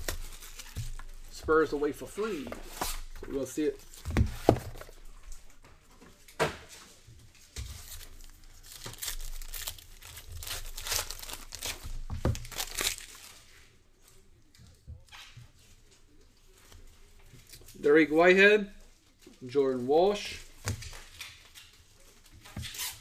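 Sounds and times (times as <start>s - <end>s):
foil pack tearing and crinkling: 7.8s - 13.3s.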